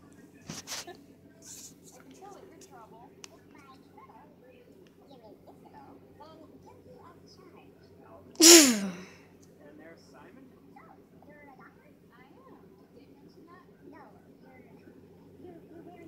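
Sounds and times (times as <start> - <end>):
faint television dialogue: 0.0 - 16.0
loud sneeze: 8.4 - 9.1.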